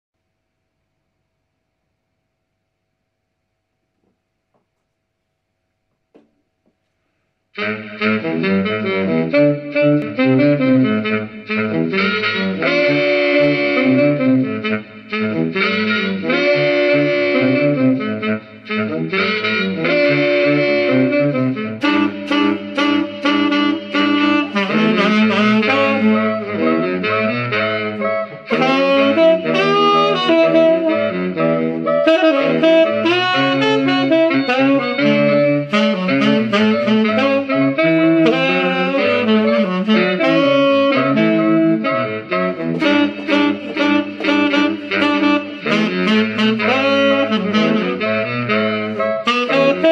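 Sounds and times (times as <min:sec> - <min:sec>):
tenor saxophone playing upbeat tune: 0:07.6 - 0:49.9.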